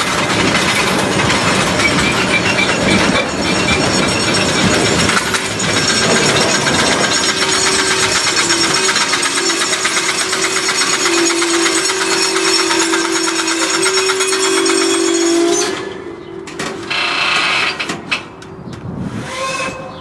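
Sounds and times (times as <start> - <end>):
train brakes grinding and squealing: 0.0 - 20.0.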